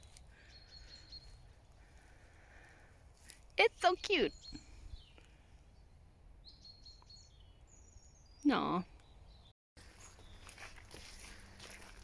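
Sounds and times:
faint birdsong whistle: 0.0 - 2.7, 4.1 - 11.4.

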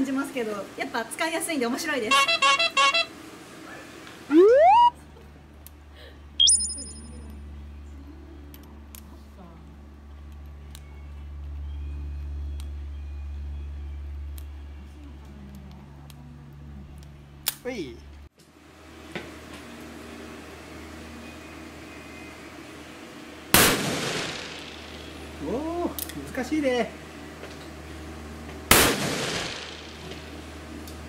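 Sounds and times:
revolver gunshot with echo: 23.6 - 25.3, 28.7 - 30.2.

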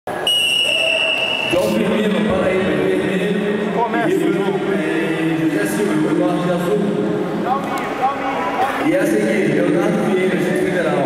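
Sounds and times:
referee's whistle: 0.1 - 1.8
voices in a hall: 0.1 - 11.0.

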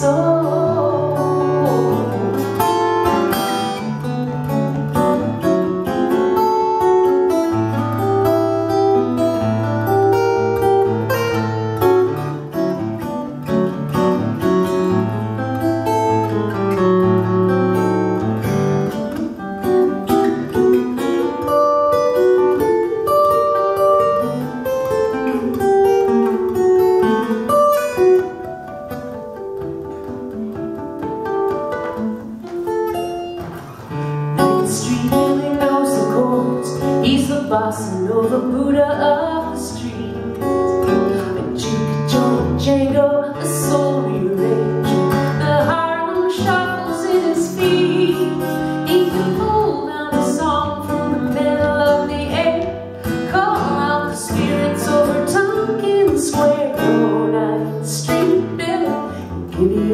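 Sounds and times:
acoustic guitar melody: 0.0 - 59.9.

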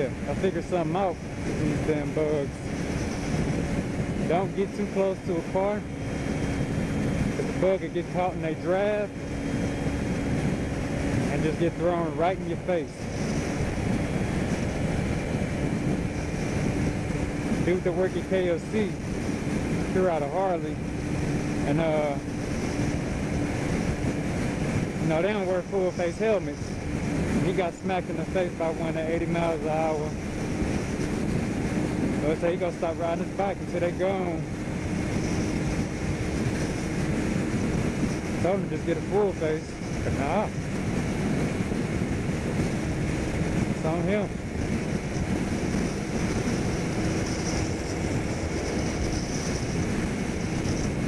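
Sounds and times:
motorcycle engine: 0.0 - 51.0
wind rushing over microphone: 0.0 - 51.0.

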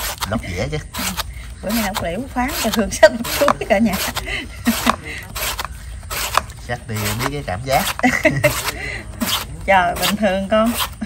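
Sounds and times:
blade slicing banana blossom: 0.0 - 11.0.

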